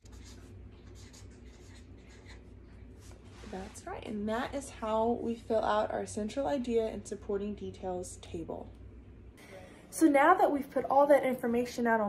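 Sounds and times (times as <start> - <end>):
marker scratching on paper: 0.0 - 3.8
low steady hum: 0.0 - 12.0.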